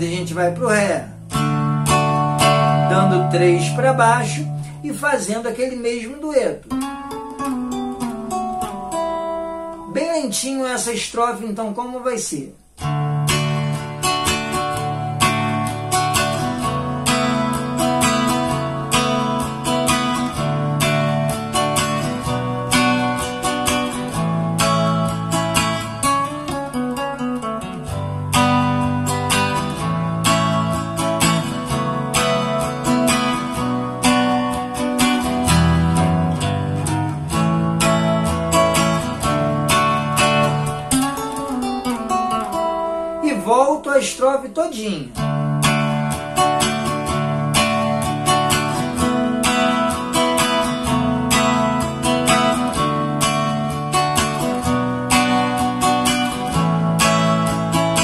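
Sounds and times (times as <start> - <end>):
nylon-string guitar chords: 0.0 - 58.0.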